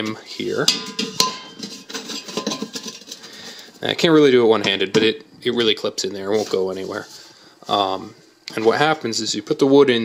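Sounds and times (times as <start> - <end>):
metal can clinking: 0.7 - 3.4
metal can scraping: 0.7 - 4.2, 5.6 - 7.3.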